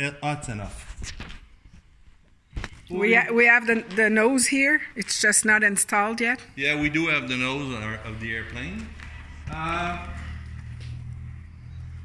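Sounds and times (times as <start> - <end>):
low hum: 6.7 - 12.0.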